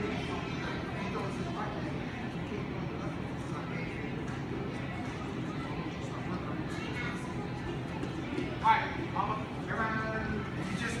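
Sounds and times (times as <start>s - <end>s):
indistinct chatter in a hall: 0.0s - 11.0s.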